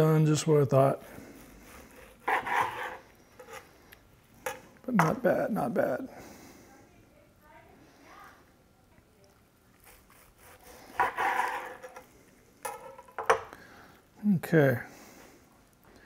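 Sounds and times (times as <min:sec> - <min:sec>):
knife scraping through meat: 0:01.2 - 0:03.8, 0:09.8 - 0:12.1.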